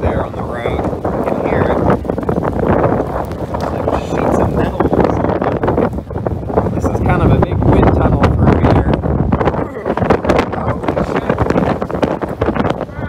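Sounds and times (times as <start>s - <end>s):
gusty wind buffeting microphone: 0.0s - 13.0s
rain: 0.0s - 13.0s.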